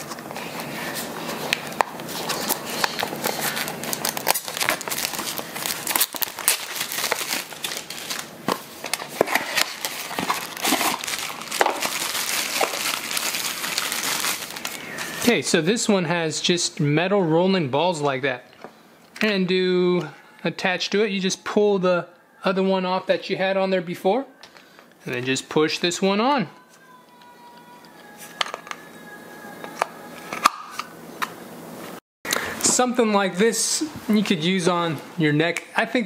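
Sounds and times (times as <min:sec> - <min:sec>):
packaging rustling: 0:00.0 - 0:15.3.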